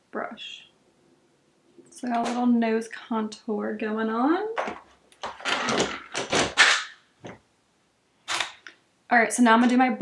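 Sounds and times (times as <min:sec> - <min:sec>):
makeup items clattering on desk: 0:04.6 - 0:06.6.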